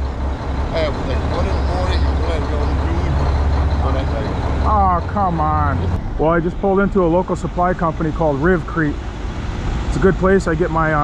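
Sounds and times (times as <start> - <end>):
diesel engine idling: 0.0 - 11.0
faint talking: 0.8 - 6.4.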